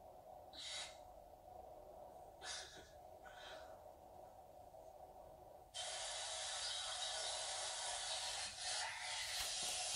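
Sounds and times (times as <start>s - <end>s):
steady hiss: 4.8s - 9.9s.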